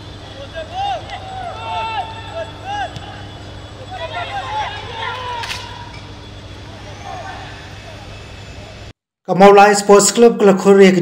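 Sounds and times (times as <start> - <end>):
distant shouts of players: 0.0 - 8.9
low rumble and hiss: 0.0 - 8.9.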